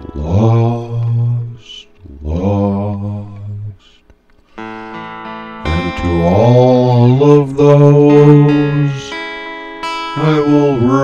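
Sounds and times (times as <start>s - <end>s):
instrumental backing: 4.4s - 11.0s.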